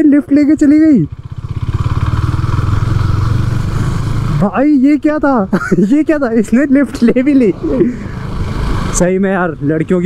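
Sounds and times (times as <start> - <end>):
motorcycle engine running: 0.0 - 5.5.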